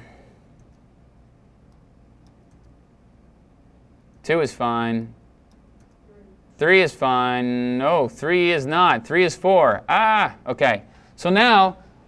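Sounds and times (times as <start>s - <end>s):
low steady hum: 0.0s - 12.0s
computer mouse clicks: 0.5s - 0.9s, 1.7s - 2.8s, 5.4s - 6.0s.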